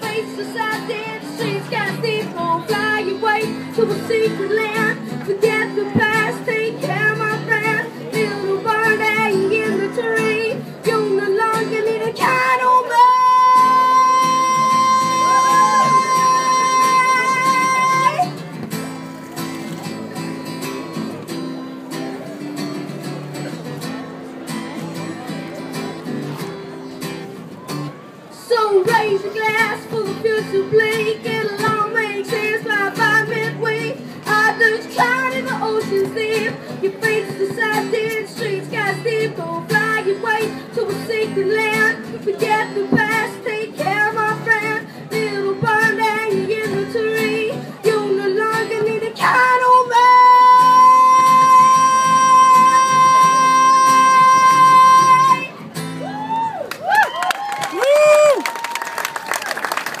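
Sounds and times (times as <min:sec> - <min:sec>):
boy singing: 0:00.0 - 0:18.3, 0:28.4 - 0:55.6
strummed acoustic guitar: 0:00.0 - 0:56.2
whoop: 0:56.0 - 0:59.6
audience clapping and cheering: 0:56.5 - 1:00.0.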